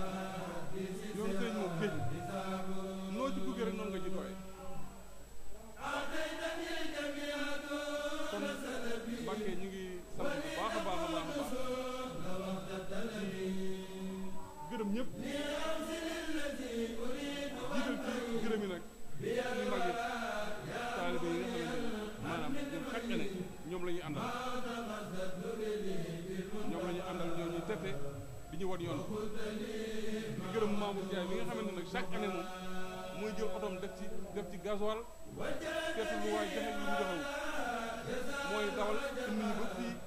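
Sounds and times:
man chanting religious song: 0:00.0 - 0:04.5, 0:05.7 - 0:40.0.

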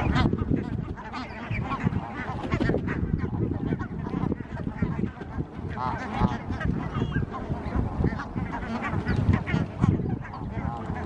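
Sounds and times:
honking bird calls: 0:00.0 - 0:11.0.

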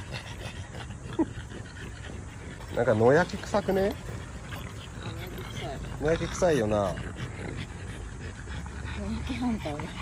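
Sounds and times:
dogs panting: 0:00.0 - 0:10.0.

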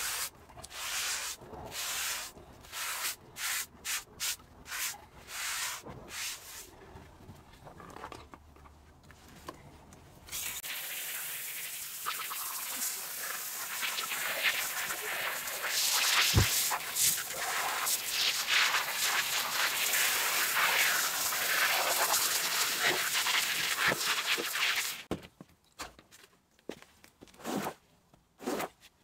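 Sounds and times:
brush scrubbing wet rug: 0:00.0 - 0:06.7, 0:13.6 - 0:25.0.

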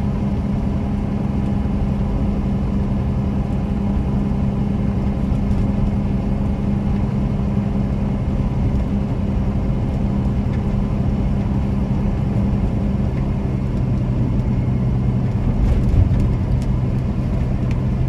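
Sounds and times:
diesel engine cruising: 0:00.0 - 0:18.0
road rumble: 0:00.0 - 0:18.0.

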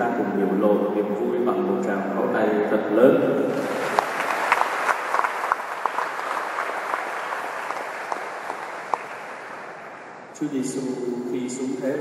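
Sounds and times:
congregation applauding: 0:03.5 - 0:10.2.

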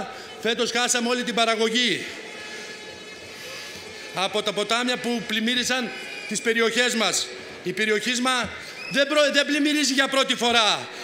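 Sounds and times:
open-air gathering background noise: 0:00.0 - 0:11.0.

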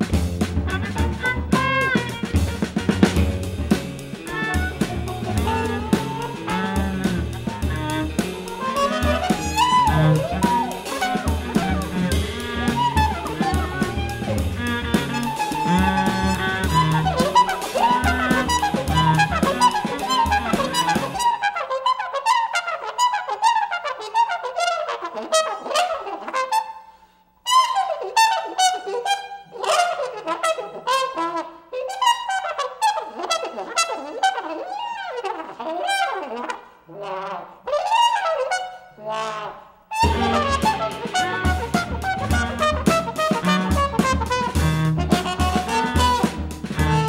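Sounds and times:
drum kit: 0:00.0 - 0:21.3, 0:40.0 - 0:47.0
viola: 0:04.2 - 0:21.4.

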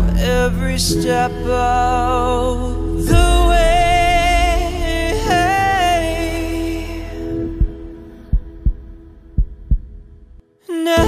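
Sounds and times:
heartbeat thumps: 0:03.1 - 0:03.8, 0:07.6 - 0:10.4.

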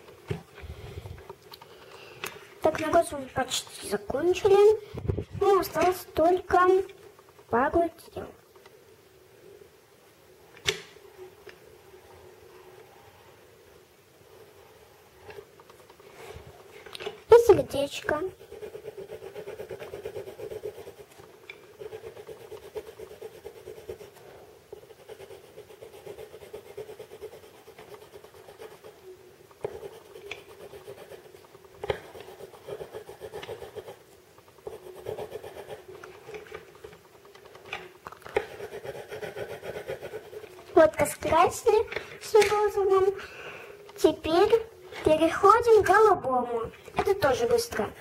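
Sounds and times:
coloured pencil scratching on paper: 0:17.3 - 0:36.9, 0:38.3 - 0:43.2.

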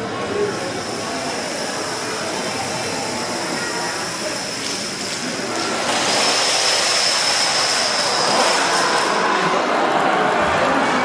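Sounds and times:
dominoes toppling clatter: 0:04.2 - 0:09.2.

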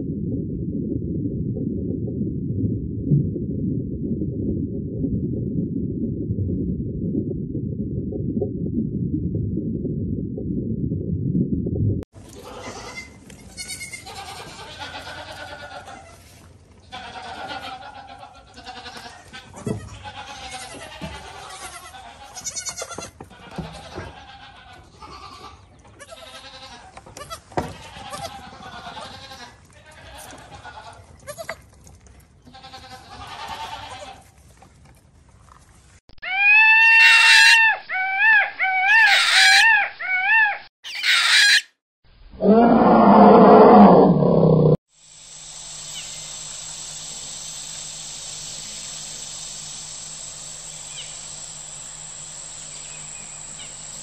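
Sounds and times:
goats bleating: 0:12.2 - 0:31.6, 0:32.5 - 0:34.3
steady hiss: 0:45.0 - 0:54.0
high rising and falling calls: 0:45.7 - 0:54.0.

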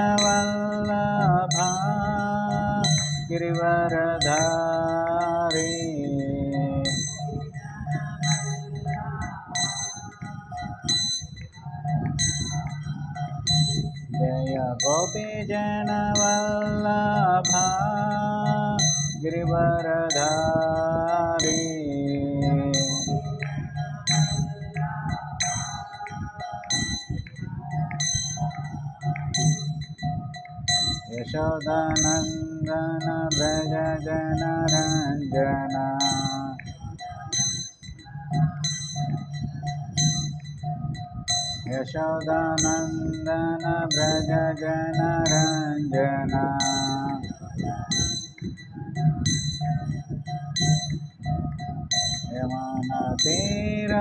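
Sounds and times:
hand cymbals clashing: 0:00.0 - 0:07.6, 0:12.2 - 0:19.4, 0:20.1 - 0:38.0, 0:38.6 - 0:47.2
accompanying instruments: 0:00.0 - 0:54.0
held musical tone: 0:00.0 - 0:54.0
person singing: 0:00.0 - 0:54.0
hand cymbals struck together: 0:20.1 - 0:38.0.

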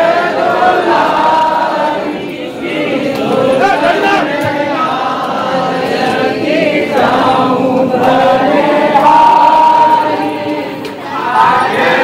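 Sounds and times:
group singing devotional song: 0:00.0 - 0:12.0.

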